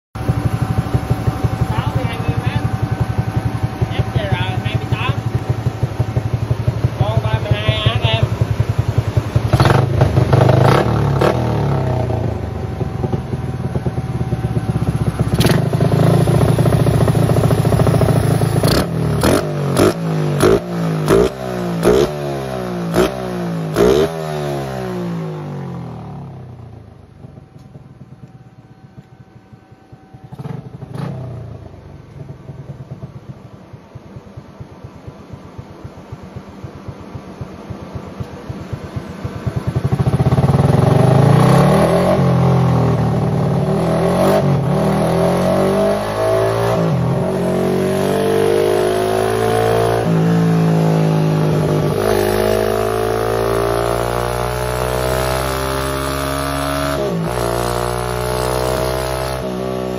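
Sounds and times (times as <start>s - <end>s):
motorcycle engine revving: 0.2s - 59.9s.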